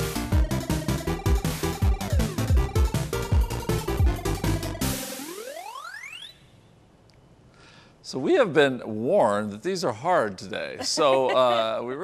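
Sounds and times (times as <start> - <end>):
rising synth sweep: 0.5 - 6.4.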